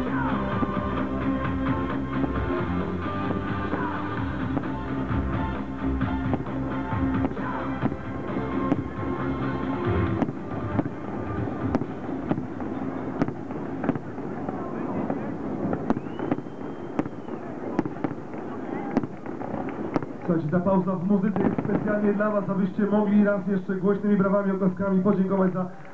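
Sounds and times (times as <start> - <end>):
music from sound system: 0.0 - 13.2
firework shells bursting: 1.9 - 23.2.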